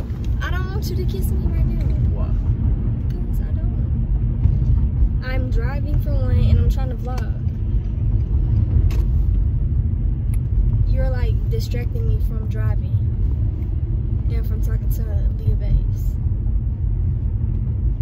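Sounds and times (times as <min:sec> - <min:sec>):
car driving rumble inside cabin: 0:00.0 - 0:18.0.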